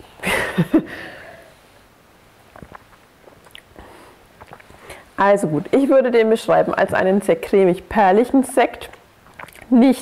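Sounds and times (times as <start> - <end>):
soft lip smacks: 2.5 - 3.8, 4.4 - 5.0, 8.9 - 9.7.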